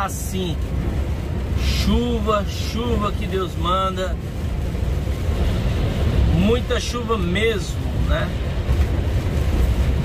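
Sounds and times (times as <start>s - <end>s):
lorry engine and tyre rumble: 0.0s - 10.0s.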